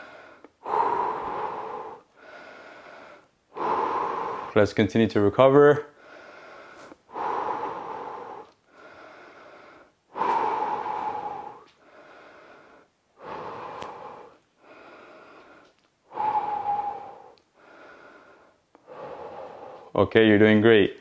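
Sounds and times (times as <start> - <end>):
man breathing deeply: 0.0 - 4.7, 5.9 - 20.0.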